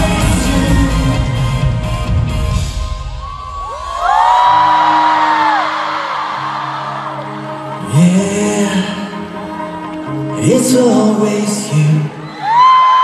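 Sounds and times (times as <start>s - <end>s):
live pop concert music: 0.0s - 13.0s
fans screaming: 2.8s - 8.0s, 12.2s - 13.0s.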